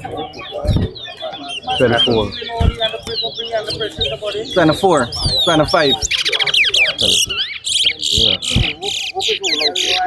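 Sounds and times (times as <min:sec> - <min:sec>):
finches singing: 0:00.0 - 0:10.0.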